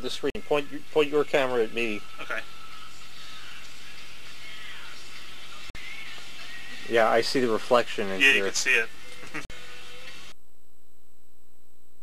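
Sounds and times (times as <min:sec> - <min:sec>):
tape playback hiss: 0:00.0 - 0:10.3.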